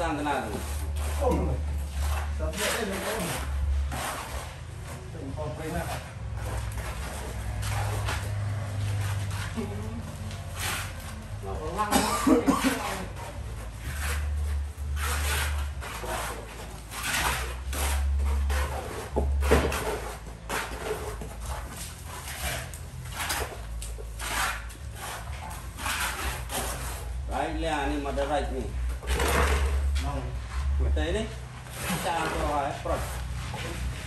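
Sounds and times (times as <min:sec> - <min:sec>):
trowel scraping cement render: 0:00.1 - 0:34.0.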